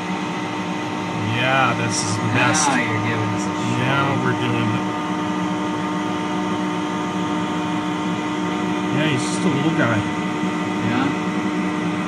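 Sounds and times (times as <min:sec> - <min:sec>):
machinery hum and whirring: 0:00.0 - 0:12.0.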